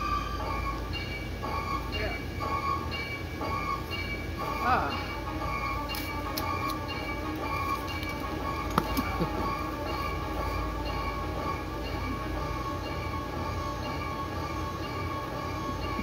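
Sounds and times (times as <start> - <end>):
low hum of blower fans: 0.0 - 16.0.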